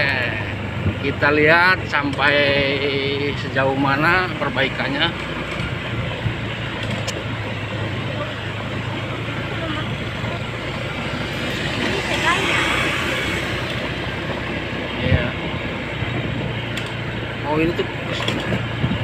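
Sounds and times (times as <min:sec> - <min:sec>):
vehicle engine humming: 0:00.0 - 0:19.0
tyre and wind noise: 0:18.0 - 0:19.0.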